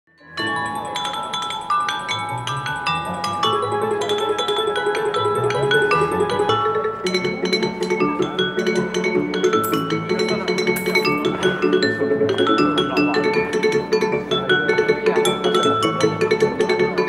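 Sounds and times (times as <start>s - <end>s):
wine glasses struck playing melody: 0.3s - 8.4s, 9.5s - 11.8s.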